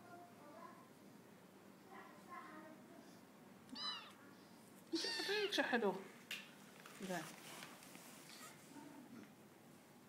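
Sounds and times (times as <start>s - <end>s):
kitten meowing: 3.7s - 4.2s, 4.9s - 5.6s.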